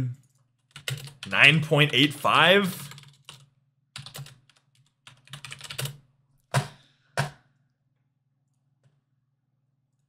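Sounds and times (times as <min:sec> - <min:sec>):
computer keyboard typing: 0:00.2 - 0:02.1, 0:02.8 - 0:06.6.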